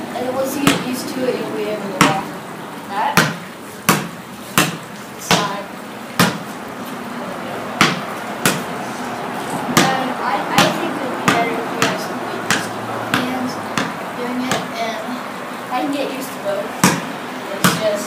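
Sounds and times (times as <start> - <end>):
basketball bouncing on concrete: 0.6 - 1.0, 2.0 - 2.3, 3.1 - 5.6, 6.2 - 6.5, 7.8 - 8.8, 9.6 - 14.8, 16.8 - 18.0.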